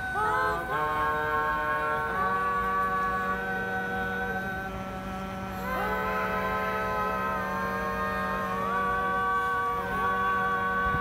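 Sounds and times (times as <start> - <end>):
barbershop quartet singing chords: 0.0 - 11.0.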